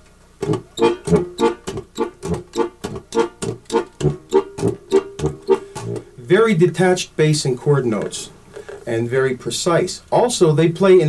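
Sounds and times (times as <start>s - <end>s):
accordion bass and chords: 0.0s - 7.6s.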